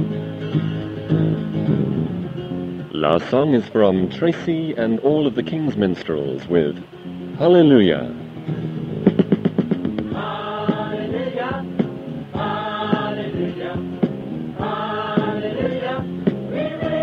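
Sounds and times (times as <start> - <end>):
choir singing long notes: 10.1 - 17.0.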